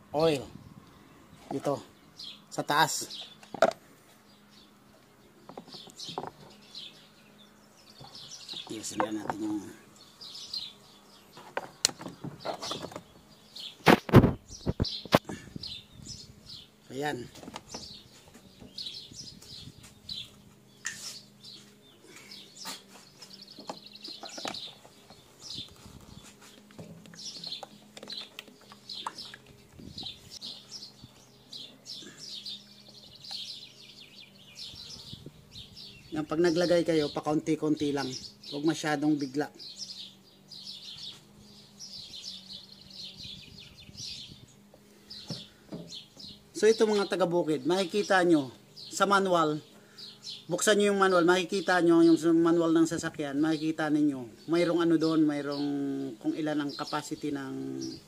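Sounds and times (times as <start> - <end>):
small birds chirping: 0.0 - 58.0.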